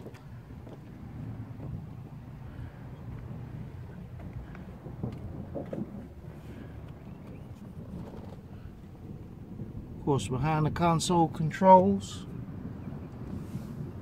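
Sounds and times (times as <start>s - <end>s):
low outdoor background rumble: 0.0s - 14.0s.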